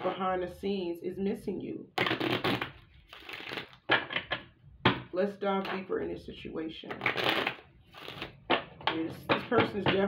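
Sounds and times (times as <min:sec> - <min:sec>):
cards shuffling: 0:02.0 - 0:04.3, 0:06.9 - 0:08.6
cards slapping: 0:07.0 - 0:08.7.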